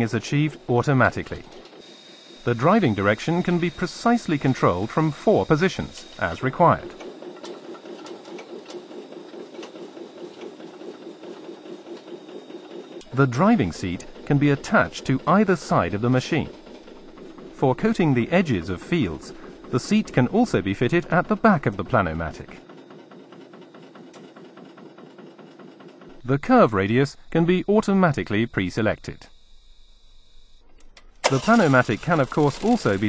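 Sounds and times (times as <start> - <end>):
track paver machine running: 0.0 - 29.5, 31.0 - 33.0.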